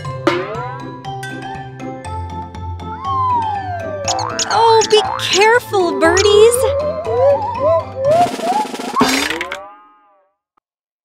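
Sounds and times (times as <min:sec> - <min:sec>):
cartoon whoosh with rising tone: 0:03.5 - 0:05.2.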